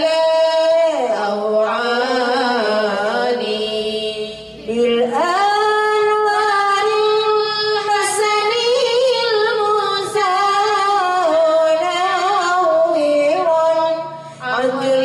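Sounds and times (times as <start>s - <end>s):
women singing into microphones: 0.0s - 15.0s.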